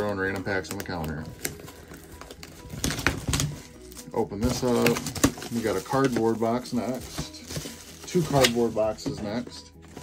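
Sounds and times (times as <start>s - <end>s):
packaging clicks and knocks: 0.0s - 10.0s.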